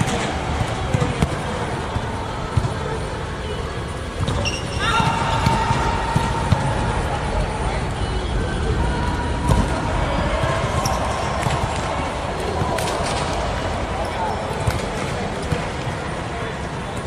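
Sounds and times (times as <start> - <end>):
shoe squeaks on court: 4.2 - 4.9.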